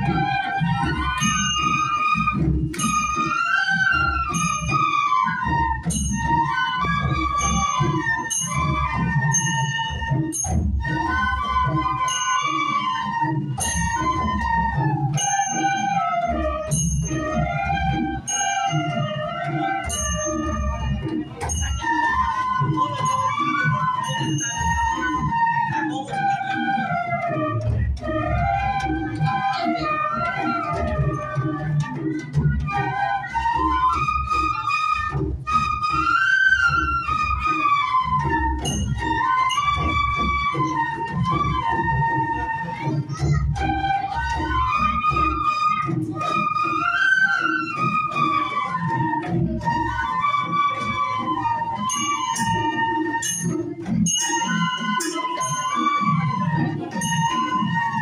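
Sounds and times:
flutes playing folk melody: 0.0 - 58.0.

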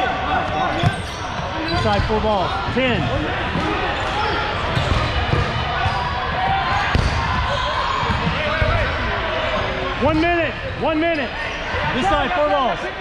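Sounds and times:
players shouting and chattering: 0.0 - 13.0.

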